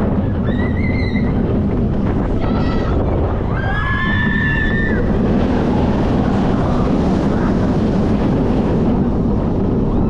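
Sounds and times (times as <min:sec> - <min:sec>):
wind rushing over microphone: 0:00.0 - 0:10.0
riders screaming: 0:00.4 - 0:01.4, 0:02.5 - 0:05.2.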